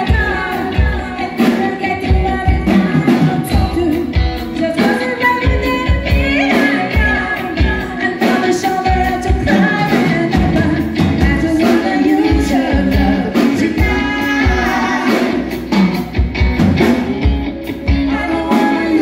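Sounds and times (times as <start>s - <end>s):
woman singing into microphone: 0.0s - 15.6s, 17.9s - 19.0s
live band music: 0.0s - 19.0s.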